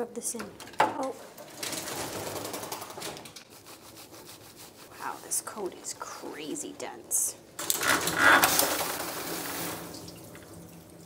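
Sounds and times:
wet scrubbing of dog's coat: 3.5s - 6.0s.

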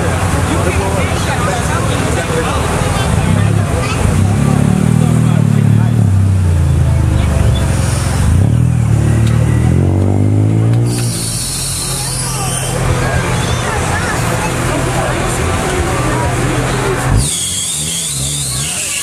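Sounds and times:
car engines rolling past: 0.0s - 19.0s
people talking: 0.0s - 19.0s.

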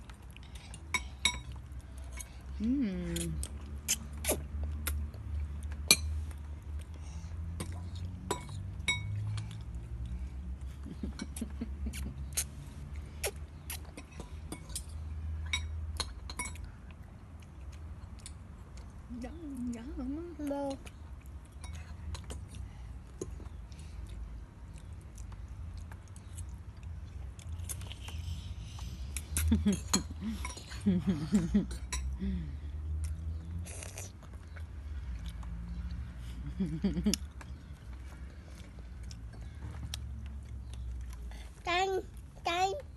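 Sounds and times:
toddler chewing: 0.0s - 15.4s, 20.3s - 42.8s.

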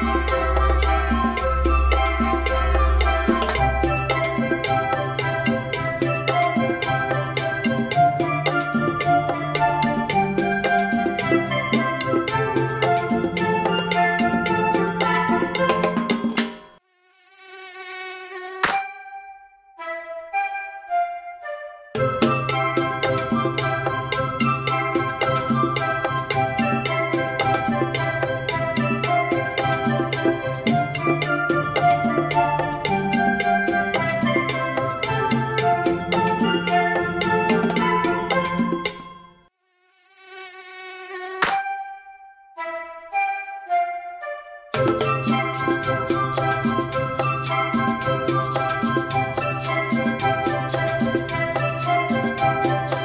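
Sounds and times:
children's song instrumental: 0.0s - 16.8s, 19.8s - 39.5s, 41.4s - 53.0s
cartoon mosquito buzzing: 15.3s - 19.2s, 39.6s - 41.8s
sharp snap: 18.6s - 18.9s, 41.4s - 41.7s.

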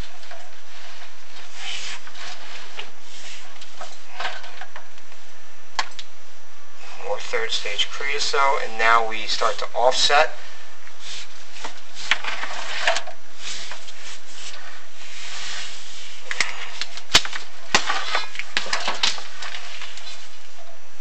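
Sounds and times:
rod scraping along flue walls: 0.0s - 4.7s, 11.0s - 20.4s.

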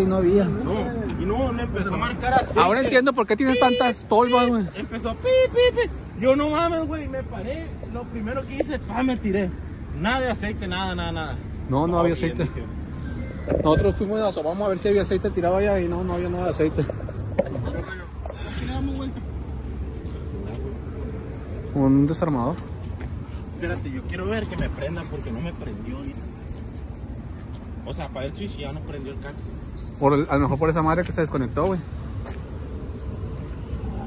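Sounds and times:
crickets chirping: 0.0s - 34.0s.

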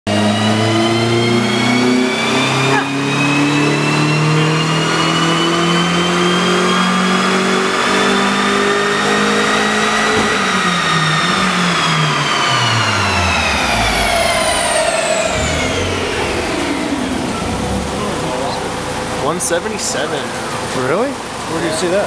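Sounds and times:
car engine revving on dyno: 0.0s - 22.0s
turbo whine rising in pitch: 0.1s - 20.4s.

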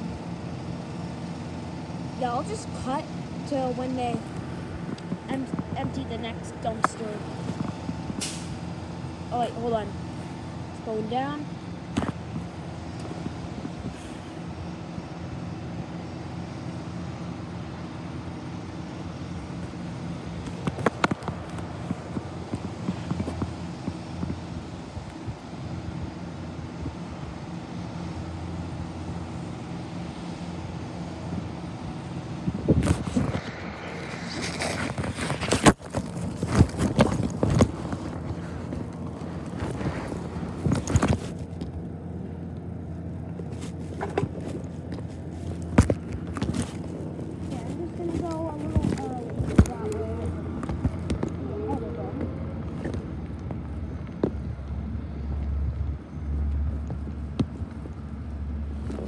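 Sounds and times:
distant garbage truck diesel engine: 0.0s - 59.0s
phone rubbing against clothing: 32.8s - 41.5s.

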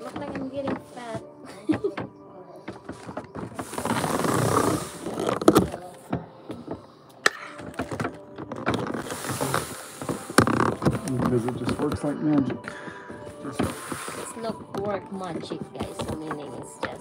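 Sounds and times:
rustling of handled objects: 0.0s - 17.0s.

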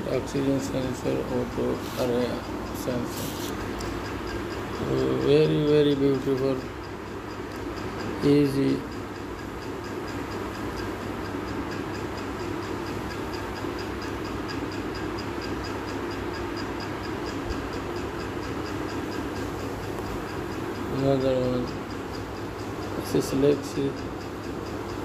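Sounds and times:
faint high-pitched ticking: 0.0s - 25.0s
steady background noise: 0.0s - 25.0s.

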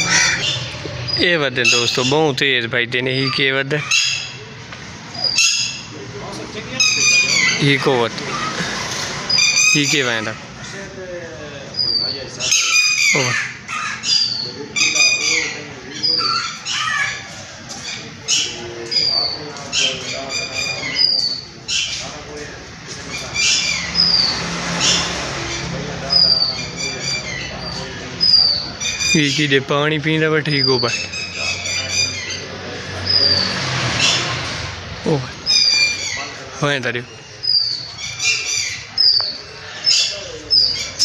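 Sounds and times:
birds squawking harshly: 0.0s - 41.0s.

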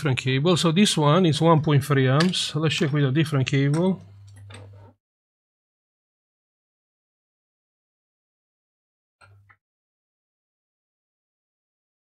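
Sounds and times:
low electrical hum: 0.4s - 4.9s.

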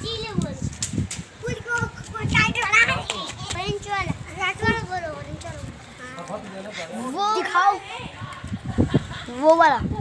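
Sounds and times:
young voices chattering: 1.4s - 10.0s.

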